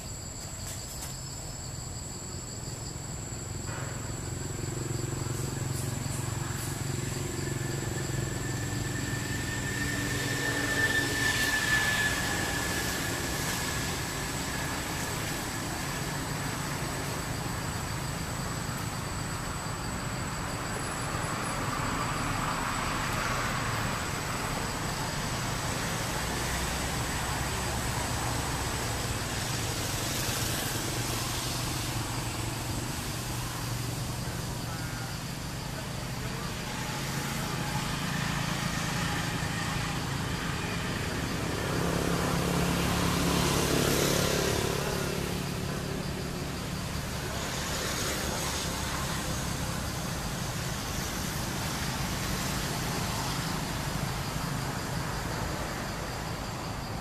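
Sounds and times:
low rumble of road traffic: 0.0s - 57.0s
vehicle passing: 4.2s - 57.0s
thin high tone: 5.9s - 15.2s.

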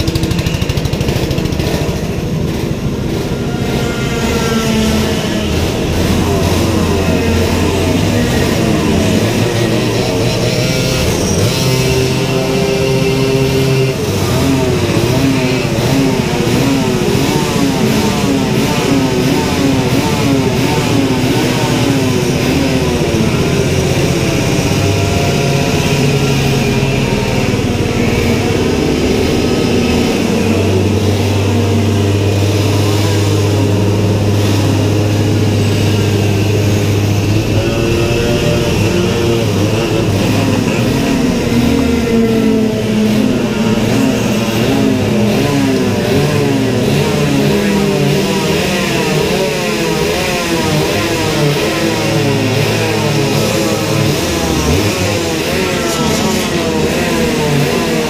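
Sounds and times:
go-kart engines idling and revving: 0.0s - 58.0s.

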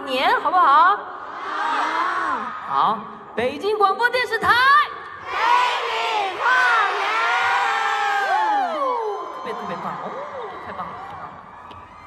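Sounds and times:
crowd shouting in unison: 5.2s - 9.3s.

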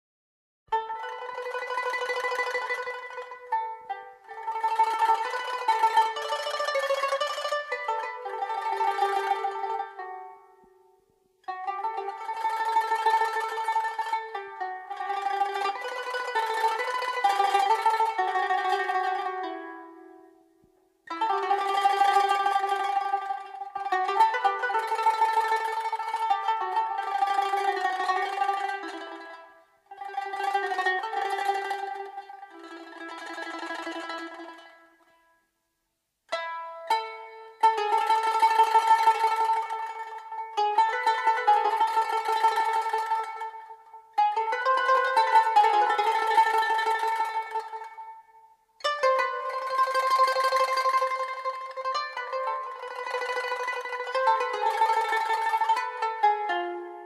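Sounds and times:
plucked string folk music: 0.7s - 57.0s.

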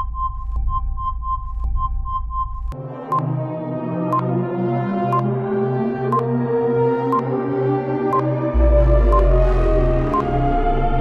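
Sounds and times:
electronic quiz music: 5.1s - 5.3s, 7.1s - 7.4s, 8.1s - 11.0s
high beeps: 8.1s - 10.7s.

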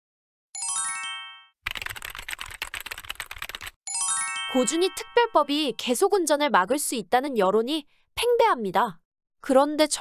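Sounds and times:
bright chime: 0.6s - 1.6s, 3.9s - 5.7s
keyboard typing clicks: 1.7s - 3.8s.

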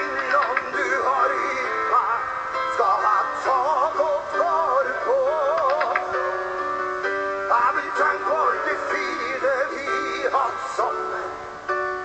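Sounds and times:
man singing with vibrato: 0.0s - 6.5s, 7.3s - 11.8s.

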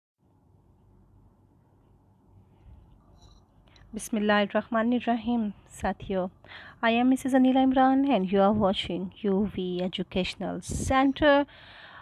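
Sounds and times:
woman speaking: 4.0s - 11.6s
short breath: 11.5s - 12.0s.

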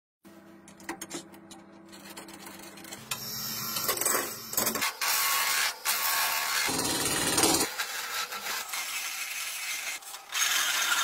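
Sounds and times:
turning tool scraping wood: 3.8s - 11.0s.

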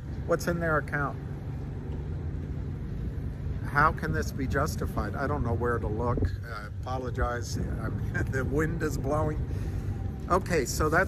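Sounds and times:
faint constant hum: 0.0s - 11.0s
vehicle engine idling: 0.0s - 11.0s
wind buffeting microphone: 1.4s - 10.8s.

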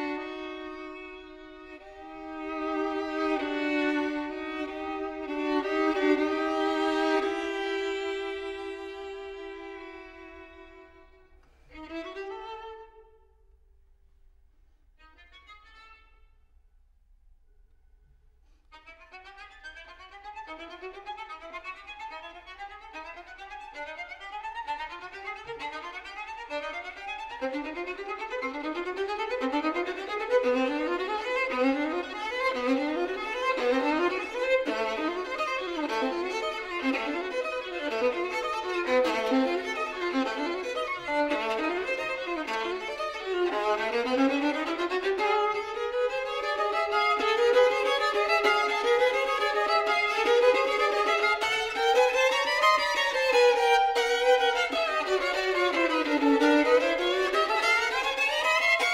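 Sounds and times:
solo violin playing: 0.0s - 13.6s, 14.8s - 16.5s, 18.6s - 58.9s.

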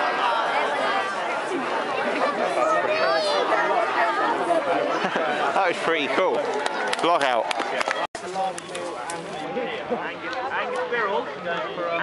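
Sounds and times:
crowd chattering: 0.0s - 12.0s.

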